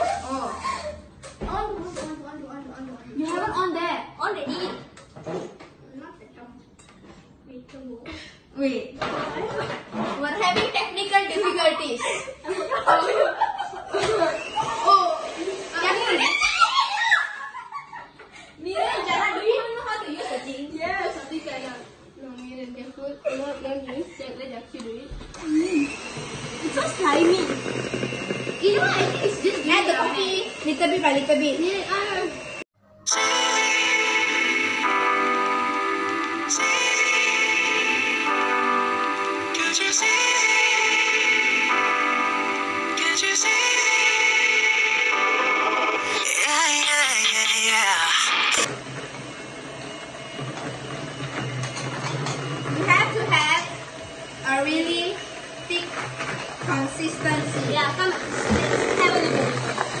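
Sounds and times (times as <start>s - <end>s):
electric hand mixer whining: 13.9s - 17.6s, 25.2s - 60.0s
background music: 32.8s - 48.7s.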